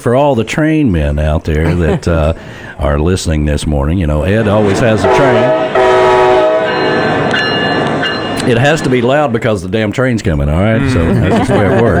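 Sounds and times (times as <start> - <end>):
train horn: 4.4 - 8.0.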